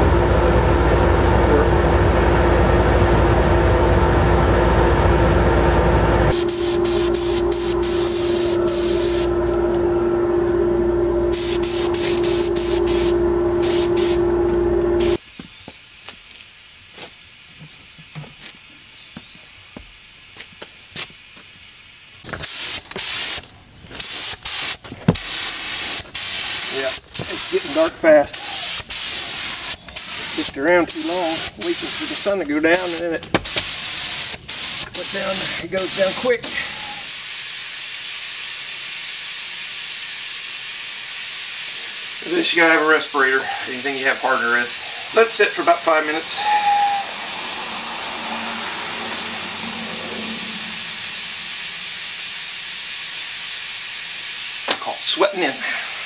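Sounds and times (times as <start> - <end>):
machine hum: 0.0 - 15.2, 41.6 - 53.0
aerosol spray can hiss: 6.3 - 9.3, 11.3 - 18.8, 20.3 - 56.0
paint spray gun hissing bursts: 6.3 - 9.6, 11.3 - 18.9, 21.2 - 56.0.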